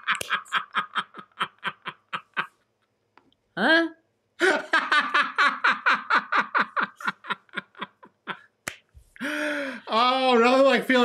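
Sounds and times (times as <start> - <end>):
person laughing: 0.0 - 2.6, 4.4 - 8.5
person speaking: 9.7 - 11.0.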